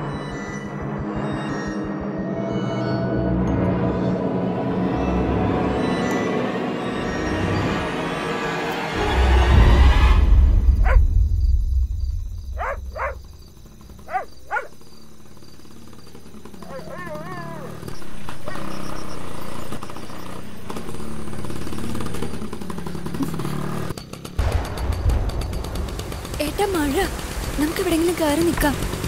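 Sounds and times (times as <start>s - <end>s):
short rising calls: 5.8s - 23.4s
night insects chirring: 7.0s - 29.0s
motor scooter engine running: 12.6s - 24.7s.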